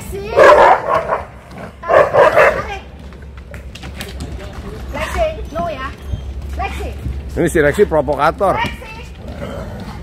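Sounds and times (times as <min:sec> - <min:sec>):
dog barking: 0:00.3 - 0:02.7.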